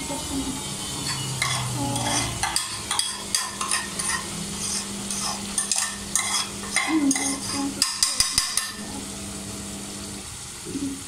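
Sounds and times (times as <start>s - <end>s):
food frying in a wok: 0.0s - 11.0s
wooden spatula scraping wok: 1.0s - 8.9s.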